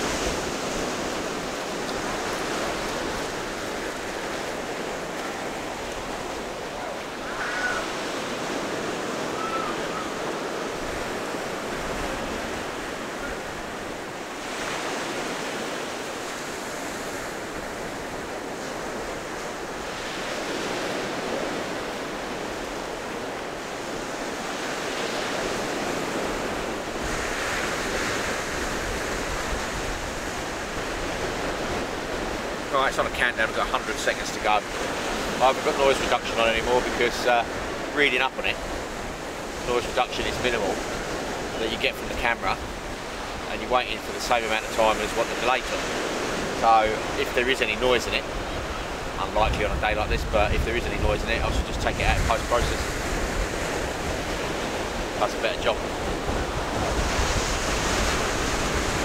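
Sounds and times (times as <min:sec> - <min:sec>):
sea surf breaking: 0:00.0 - 0:59.0.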